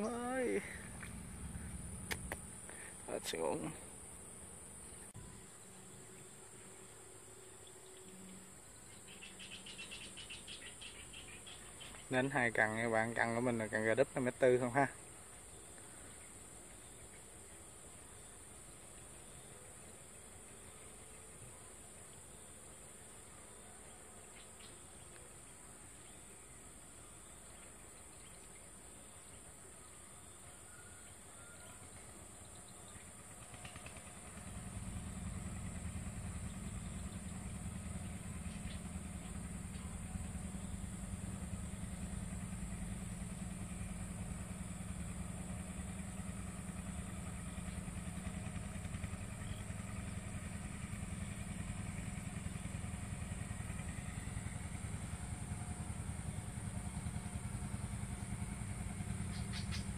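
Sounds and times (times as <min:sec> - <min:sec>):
small engine running: 0:00.0 - 0:07.3, 0:07.9 - 0:15.1, 0:31.8 - 0:59.9.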